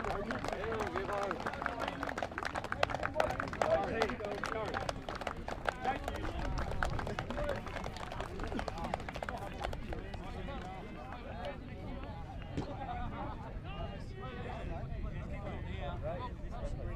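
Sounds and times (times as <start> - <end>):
people chatting: 0.0 - 16.9.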